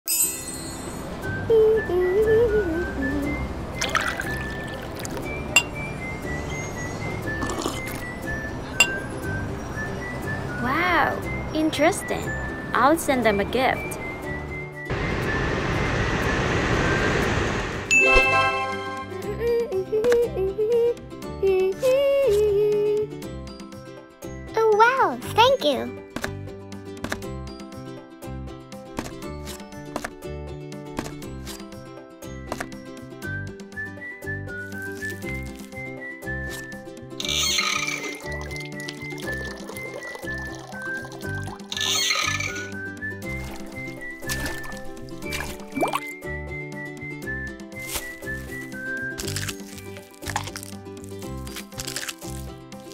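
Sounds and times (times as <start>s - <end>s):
faint background music: 1.2s - 14.8s, 18.0s - 52.9s
jet-like rushing noise: 14.9s - 18.0s.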